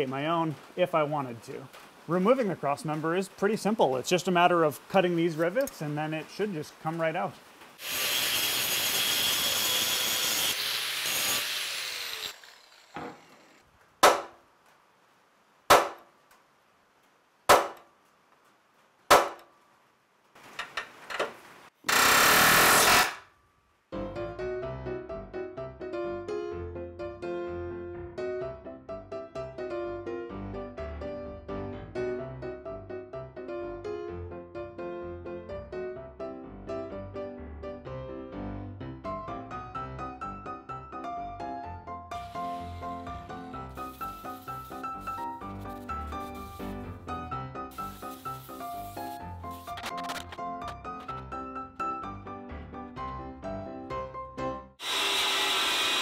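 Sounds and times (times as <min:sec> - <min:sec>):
angle grinder cutting steel: 0:07.8 - 0:13.7, 0:54.8 - 0:56.0
sharp knocks: 0:14.0 - 0:14.4, 0:15.7 - 0:16.1, 0:17.5 - 0:17.9, 0:19.1 - 0:19.5
background music: 0:24.0 - 0:54.8.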